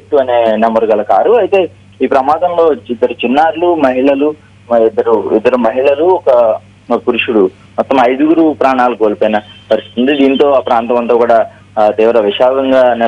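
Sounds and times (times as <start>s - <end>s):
low hum: 0.0s - 13.0s
person speaking over telephone: 2.0s - 13.0s.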